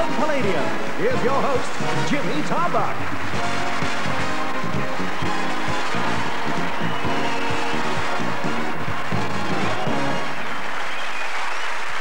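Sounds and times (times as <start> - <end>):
live band playing dance music: 0.0 - 10.5
audience applause: 0.0 - 12.0.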